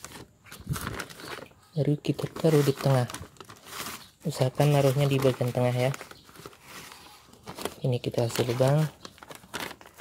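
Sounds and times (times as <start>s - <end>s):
plastic bag rustling and crinkling: 0.0s - 10.0s.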